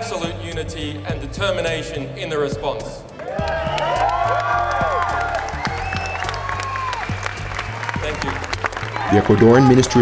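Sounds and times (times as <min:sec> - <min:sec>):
background music with bass line: 0:00.0 - 0:10.0
crowd applauding: 0:03.2 - 0:10.0.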